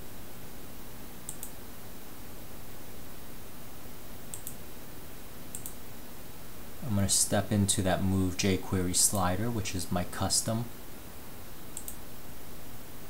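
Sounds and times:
steady background hiss: 0:00.0 - 0:13.0
computer mouse double clicks: 0:05.5 - 0:05.8.

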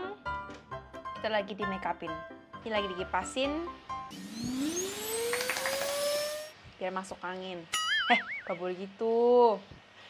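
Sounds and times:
handheld fan motor whine: 0:04.1 - 0:06.6.

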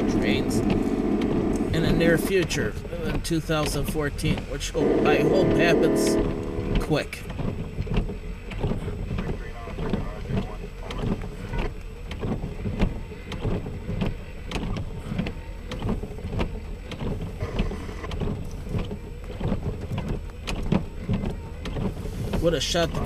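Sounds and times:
engine idling hum: 0:00.0 - 0:23.0
raindrops tapping on car: 0:00.0 - 0:23.0
windshield wiper sweeping: 0:00.0 - 0:23.0.

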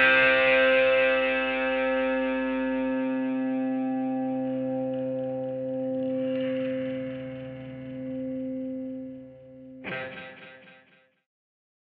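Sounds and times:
electric guitar chord ringing: 0:00.0 - 0:11.0.

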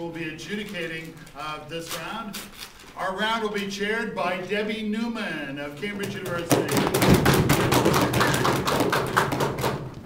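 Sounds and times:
audience clapping: 0:06.2 - 0:10.0.

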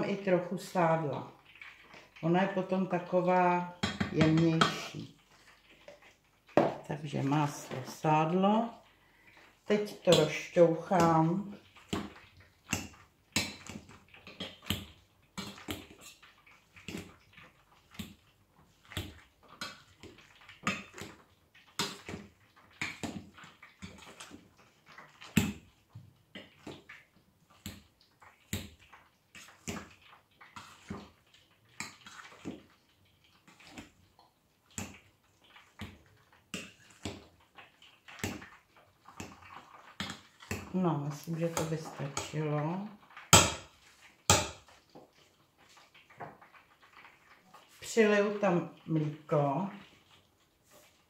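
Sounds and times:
potatoes squashing: 0:00.0 - 0:51.0
masher clacking against metal pot: 0:43.4 - 0:43.7.

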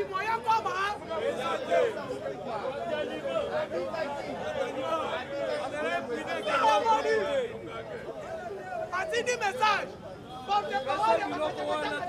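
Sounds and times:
men talking over one another: 0:00.0 - 0:12.0.

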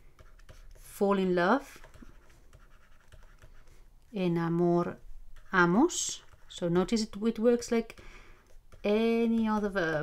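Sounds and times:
stylus scratching on tablet: 0:00.0 - 0:10.0.

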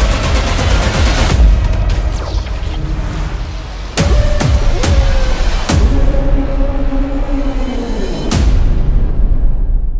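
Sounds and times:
sustained low drone: 0:02.8 - 0:09.8.

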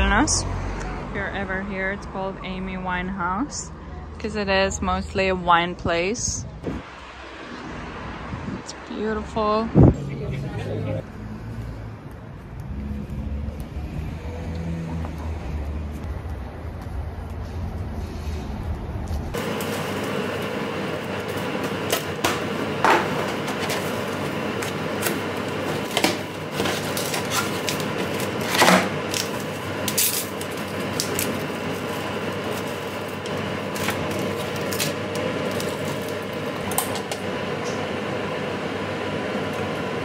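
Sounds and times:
rumble of car engines: 0:00.0 - 0:40.0
tea bag packaging rustling: 0:23.2 - 0:36.7.

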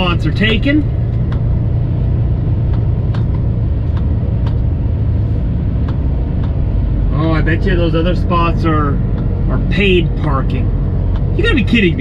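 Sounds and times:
truck diesel engine rumble: 0:00.0 - 0:12.0
faint irregular clicks: 0:02.6 - 0:04.7, 0:05.8 - 0:06.7, 0:11.0 - 0:11.4.

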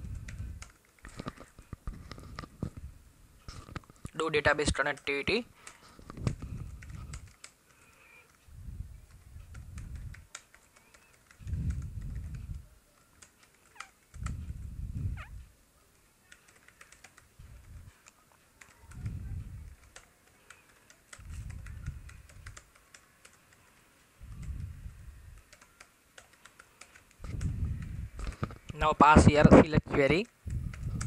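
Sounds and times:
computer keyboard typing: 0:00.0 - 0:01.6, 0:04.1 - 0:14.5, 0:16.2 - 0:28.8.

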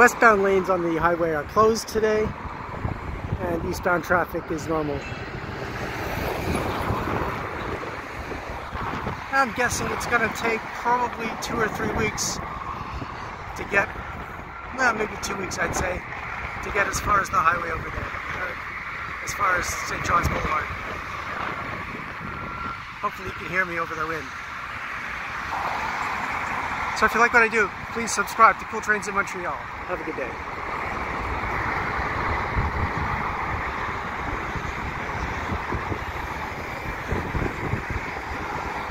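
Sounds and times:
road traffic passing: 0:00.0 - 0:38.9
wind on microphone: 0:01.8 - 0:23.4, 0:30.5 - 0:38.9.

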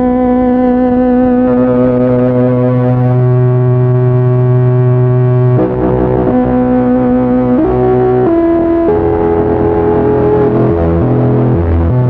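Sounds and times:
electronic keyboard droning chord: 0:00.0 - 0:12.0
low bass note: 0:00.9 - 0:12.0.

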